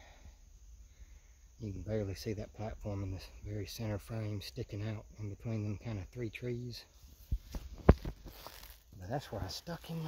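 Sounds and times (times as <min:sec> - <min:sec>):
footsteps through grass and leaves: 0:06.9 - 0:10.0.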